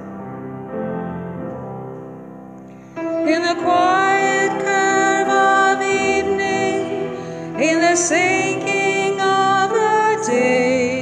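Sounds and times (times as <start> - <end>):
piano playing hymn chords: 0.0 - 11.0
woman singing a hymn: 3.1 - 11.0.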